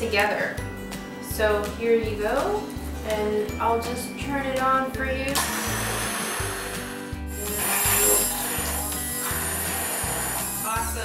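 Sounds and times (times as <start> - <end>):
immersion blender whining: 5.4 - 10.9.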